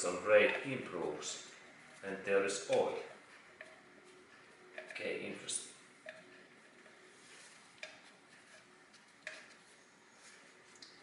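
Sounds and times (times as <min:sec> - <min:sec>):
faint metallic clicks and taps: 0:06.0 - 0:07.0, 0:07.7 - 0:08.2.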